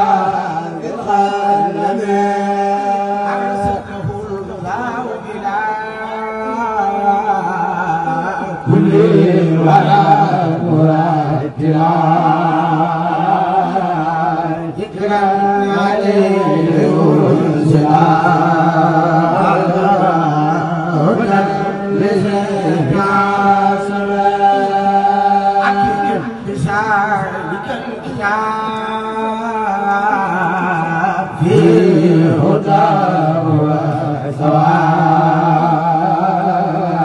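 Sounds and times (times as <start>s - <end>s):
men chanting into microphones: 0.0s - 37.0s.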